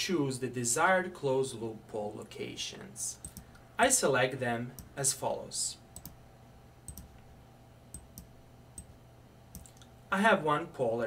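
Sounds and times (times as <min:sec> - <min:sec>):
faint steady hum: 0:00.0 - 0:11.0
computer mouse clicks: 0:03.2 - 0:03.6, 0:06.0 - 0:06.2, 0:06.9 - 0:07.2, 0:07.9 - 0:09.9.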